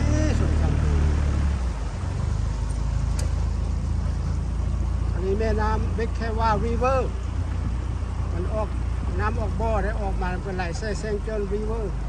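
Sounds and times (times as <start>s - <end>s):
boat motor rumble: 0.0s - 12.0s
rushing wind and water: 0.0s - 12.0s.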